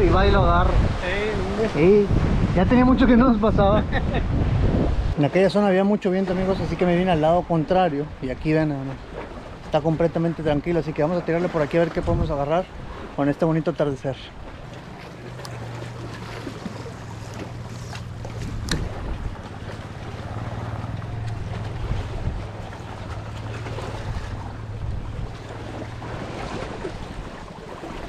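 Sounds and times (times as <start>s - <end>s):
water noise: 0.0s - 28.0s
wind: 0.0s - 28.0s
low motor hum: 14.5s - 28.0s.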